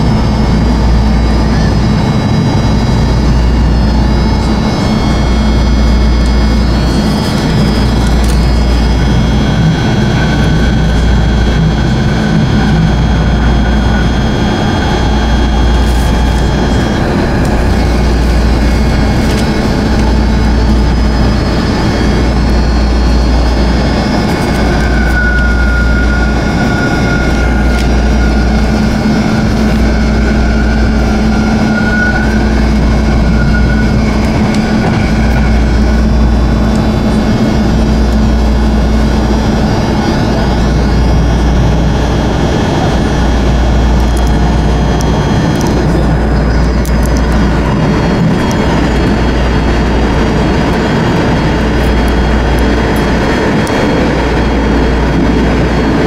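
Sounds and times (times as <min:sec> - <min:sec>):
high whine: 0:00.0 - 0:56.0
train interior rumble: 0:00.0 - 0:56.0.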